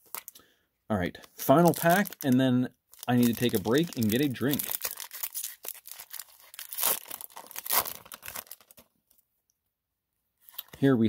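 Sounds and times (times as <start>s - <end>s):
foil wrapper tearing and crinkling: 1.5s - 8.9s.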